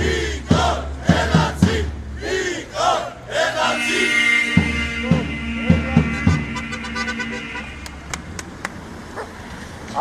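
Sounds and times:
marching crowd: 0:00.0 - 0:10.0
passing traffic: 0:00.0 - 0:10.0
steady horn-like tone: 0:03.4 - 0:08.3.

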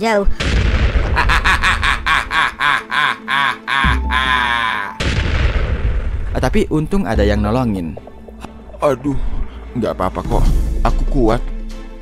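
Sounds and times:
hearty laughter: 0:01.0 - 0:05.0
music with steady low bass: 0:05.0 - 0:12.0.

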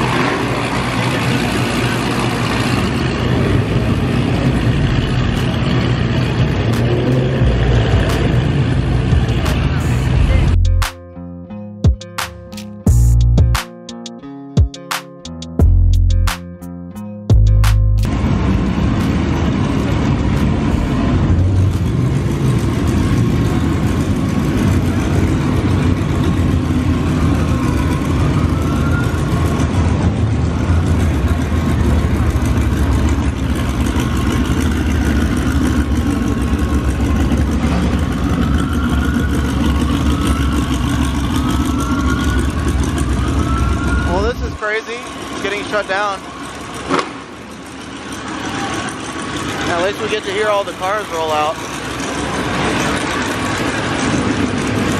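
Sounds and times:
car engines idling: 0:00.0 - 0:54.9.

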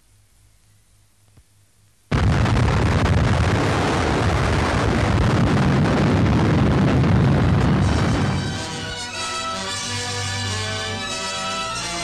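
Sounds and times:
explosion blast: 0:02.1 - 0:09.1
heavy rumble: 0:02.1 - 0:09.2.

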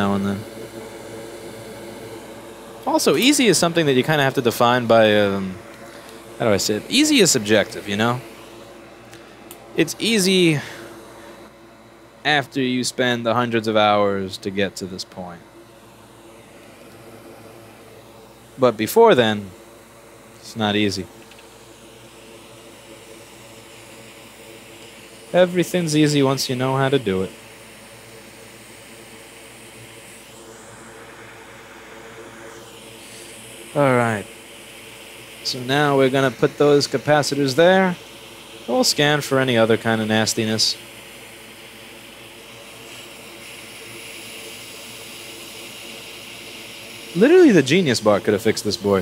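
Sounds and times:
faint hum: 0:00.0 - 0:49.0
hot air blower hissing: 0:00.0 - 0:49.0.

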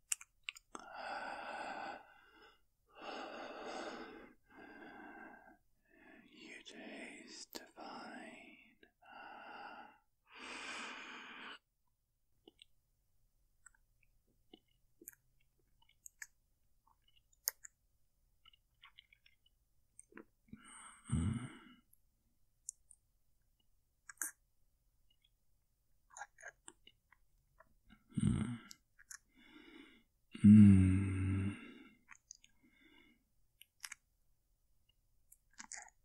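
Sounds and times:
wet mouth click: 0:00.1 - 0:00.8, 0:16.9 - 0:17.8, 0:24.0 - 0:24.4, 0:28.7 - 0:29.2, 0:33.6 - 0:34.0, 0:35.3 - 0:36.0
wet mouth clicks: 0:00.1 - 0:00.8, 0:12.4 - 0:12.8, 0:14.5 - 0:15.2, 0:15.8 - 0:17.8, 0:22.6 - 0:23.0, 0:24.0 - 0:24.4, 0:26.1 - 0:27.2, 0:28.6 - 0:29.3, 0:32.0 - 0:32.6, 0:33.6 - 0:34.0, 0:35.3 - 0:36.0
man breathing close-miked: 0:00.8 - 0:07.4, 0:08.1 - 0:11.6, 0:29.3 - 0:32.0
man sighing: 0:30.4 - 0:31.9.

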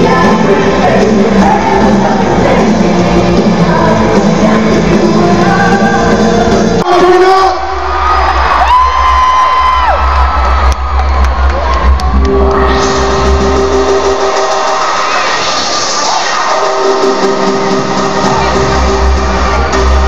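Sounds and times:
electronic dance music: 0:00.0 - 0:08.4, 0:10.1 - 0:20.0
crowd cheering: 0:07.6 - 0:20.0.

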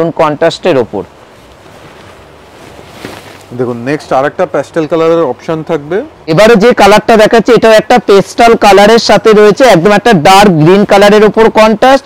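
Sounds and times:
silk fabric rustling: 0:01.2 - 0:04.0.

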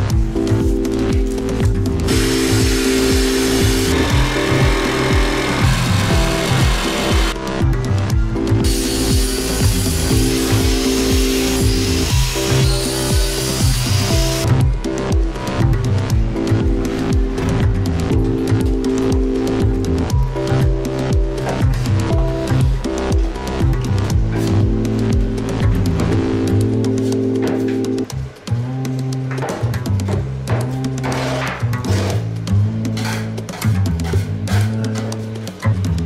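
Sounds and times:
house music with steady beat: 0:00.0 - 0:31.1
power tool grinding: 0:02.1 - 0:07.4.

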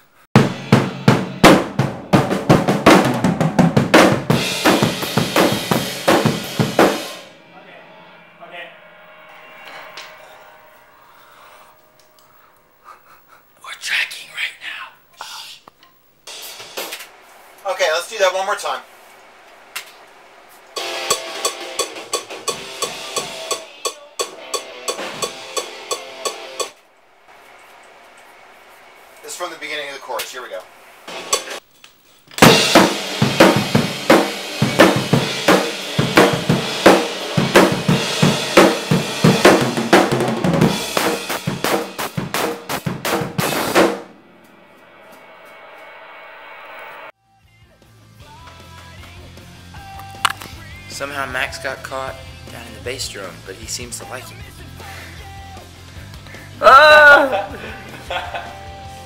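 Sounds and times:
drum and cymbal hits: 0:00.4 - 0:12.0, 0:16.3 - 0:18.9, 0:19.6 - 0:26.8, 0:29.1 - 0:31.7, 0:32.4 - 0:47.1, 0:47.7 - 0:59.0
man speaking: 0:13.6 - 0:15.7, 0:29.2 - 0:30.7, 0:50.9 - 0:54.3.

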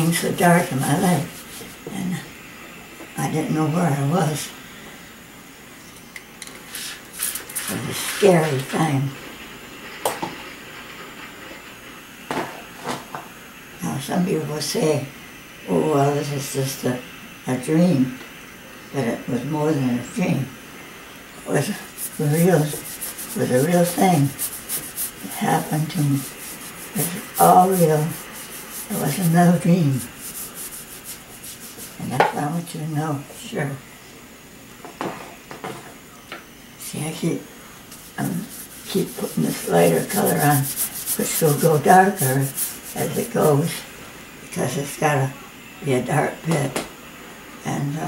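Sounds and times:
spray bottle squirts: 0:21.9 - 0:25.4.

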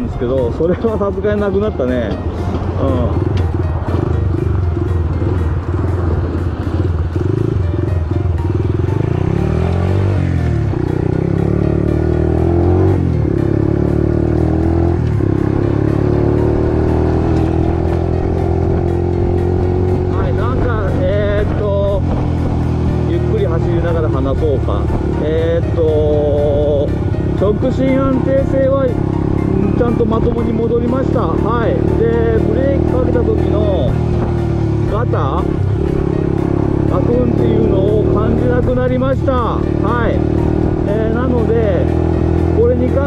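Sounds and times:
motorcycle engine accelerating: 0:00.8 - 0:43.0.

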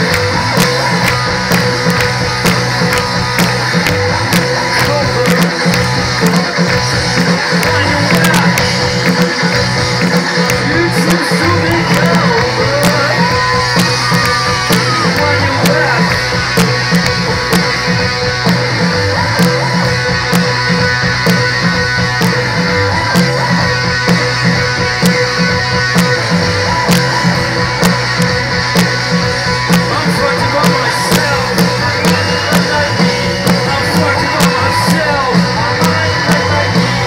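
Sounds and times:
live rock band playing: 0:00.0 - 0:37.0.

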